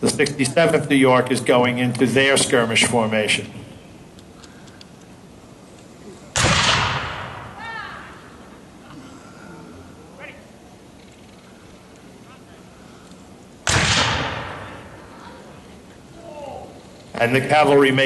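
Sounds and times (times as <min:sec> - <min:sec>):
musket shots with echo: 0:06.3 - 0:07.6, 0:13.6 - 0:15.0.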